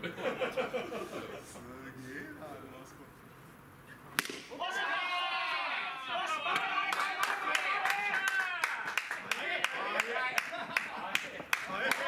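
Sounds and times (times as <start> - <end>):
bat cracking ball: 4.1 - 4.6
voices shouting and cheering: 4.4 - 12.0
rapid hand clapping: 6.9 - 12.0.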